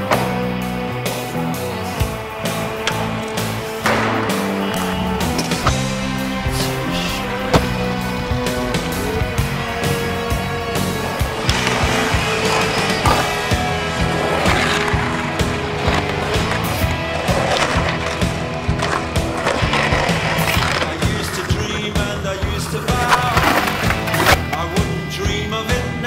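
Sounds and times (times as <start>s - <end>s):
loud music: 0.0s - 26.0s
skateboard grinding concrete ledge: 0.0s - 26.0s
skateboard wheels rolling on concrete: 0.0s - 26.0s
skateboard tail pops and landings: 2.8s - 6.0s.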